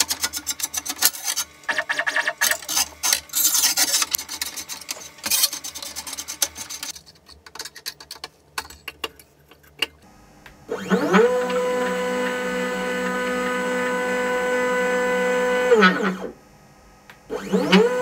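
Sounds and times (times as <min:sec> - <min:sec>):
stepper motors whining: 0:10.7 - 0:16.3.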